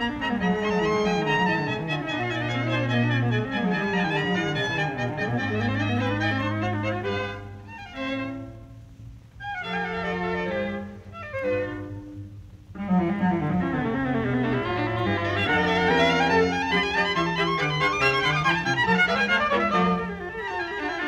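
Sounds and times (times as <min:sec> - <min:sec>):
string quartet playing: 0:00.0 - 0:21.0.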